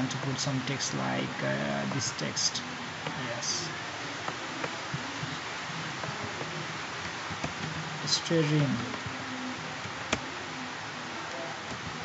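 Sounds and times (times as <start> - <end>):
microphone background hiss: 0.0 - 12.0.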